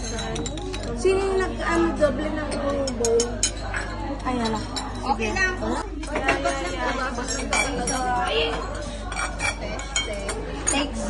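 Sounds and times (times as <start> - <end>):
chatter of voices: 0.0 - 11.0
dishes and chopsticks clinking: 0.0 - 11.0.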